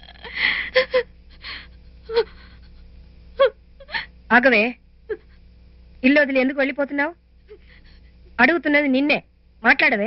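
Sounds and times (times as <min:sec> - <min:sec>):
woman sobbing: 0:00.0 - 0:04.2, 0:05.1 - 0:05.4, 0:07.4 - 0:08.1.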